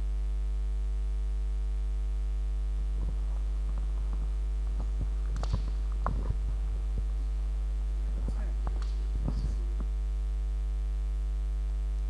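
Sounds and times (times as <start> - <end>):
electrical mains hum: 0.0 - 12.0
microphone handling knocks: 3.0 - 7.1.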